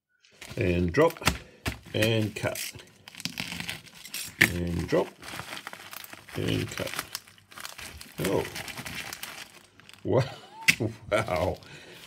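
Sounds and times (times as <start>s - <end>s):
plastic bag crinkling: 0.3s - 10.3s.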